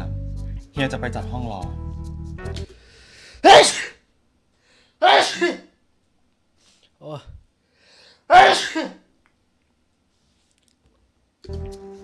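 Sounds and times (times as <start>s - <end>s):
man sneezing: 3.4s - 4.1s, 5.0s - 5.8s, 8.3s - 9.1s.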